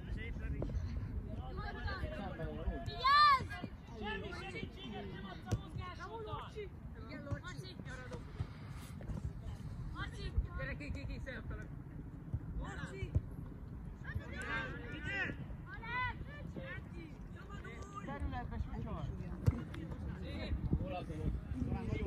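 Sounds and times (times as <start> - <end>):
voices calling and shouting: 0.1 - 11.7, 12.4 - 22.0.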